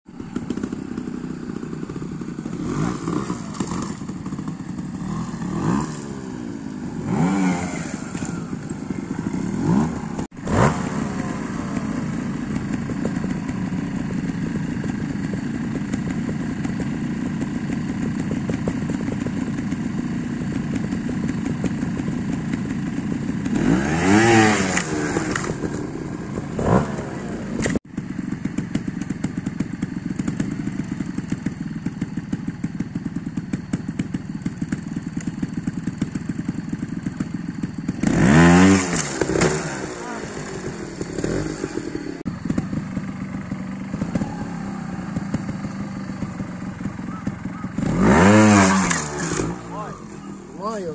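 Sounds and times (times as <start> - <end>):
motorcycle engine revving: 0.1 - 50.9.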